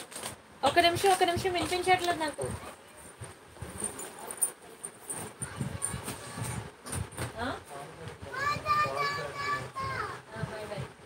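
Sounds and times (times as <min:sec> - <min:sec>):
child's high-pitched calls: 0:08.3 - 0:10.2.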